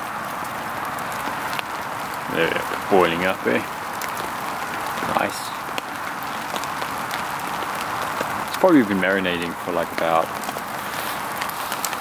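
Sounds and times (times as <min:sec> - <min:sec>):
fire crackling: 0:00.0 - 0:12.0.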